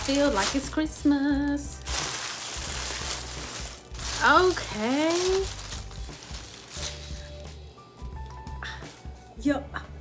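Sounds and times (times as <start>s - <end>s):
paper wrapping crinkling: 0.0s - 7.5s.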